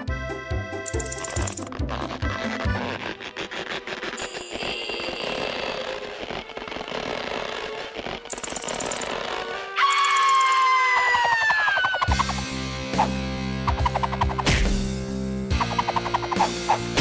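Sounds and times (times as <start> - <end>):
music: 0.0 - 17.0.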